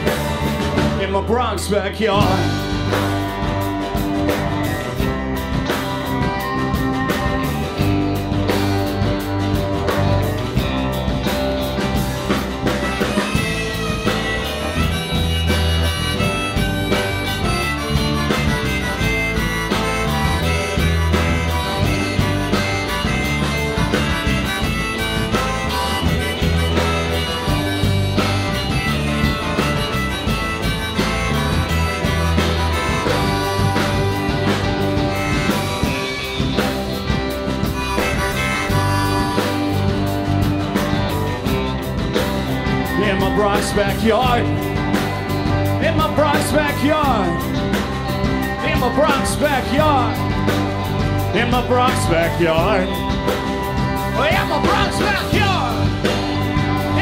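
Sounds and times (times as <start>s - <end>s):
harmonica solo: 0.0s - 1.4s, 2.0s - 57.0s
bass: 0.0s - 57.0s
drums: 0.0s - 57.0s
strummed acoustic guitar: 0.0s - 57.0s.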